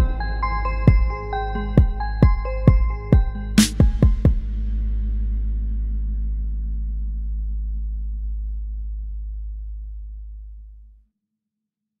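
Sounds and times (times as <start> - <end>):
deep bass note of trap beat: 0.0 - 10.9.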